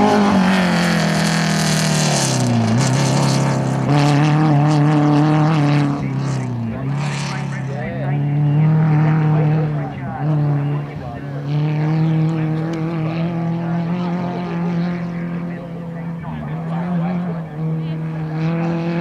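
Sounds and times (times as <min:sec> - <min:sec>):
buggy engine running hard: 0:00.0 - 0:19.0.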